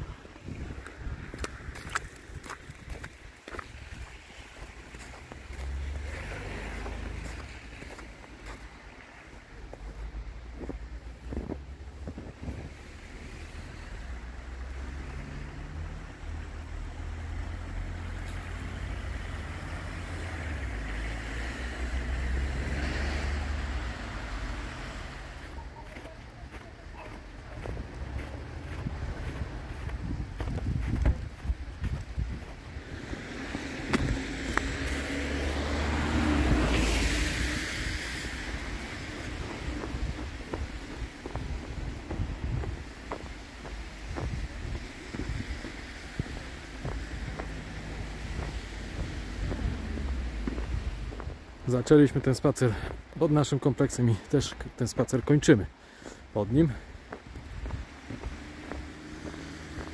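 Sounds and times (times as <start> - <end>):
wind buffeting microphone: 0.0 - 5.5, 9.6 - 12.8, 26.5 - 51.7, 57.0 - 59.9
footsteps crunching through snow: 0.0 - 16.7, 22.8 - 59.9
cars passing on slushy street: 0.0 - 59.9.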